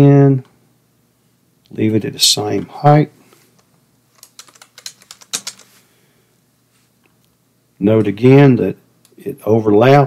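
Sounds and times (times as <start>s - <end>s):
computer keyboard typing: 4.2s - 5.8s.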